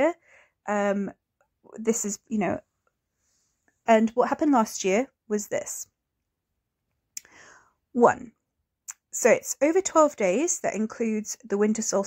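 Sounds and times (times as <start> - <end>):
woman speaking: 0.0 - 2.6, 3.9 - 5.9, 8.0 - 12.0
short breath in: 7.2 - 7.8.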